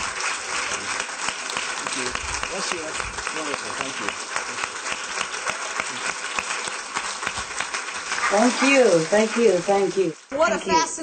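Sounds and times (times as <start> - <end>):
large audience applauding: 0.0 - 10.3.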